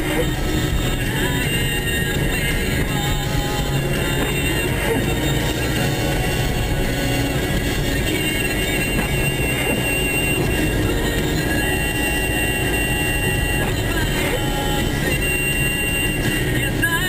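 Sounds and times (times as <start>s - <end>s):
car driving on snowy road: 0.0s - 17.0s.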